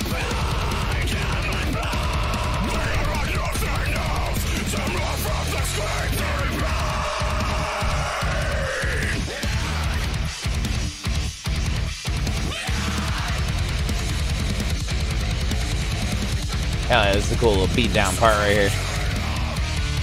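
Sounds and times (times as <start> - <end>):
person singing: 0.0 - 10.2, 16.9 - 19.6
heavy metal song: 0.0 - 20.0.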